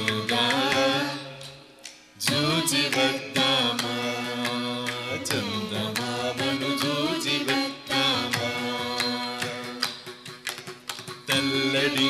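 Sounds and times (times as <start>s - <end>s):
group singing in unison: 0.0s - 10.4s, 11.3s - 12.0s.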